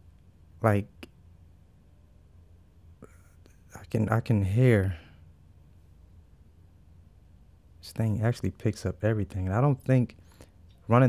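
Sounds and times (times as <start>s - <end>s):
low room hum: 0.0s - 11.0s
man speaking: 0.6s - 1.1s, 3.6s - 5.2s, 7.8s - 10.2s.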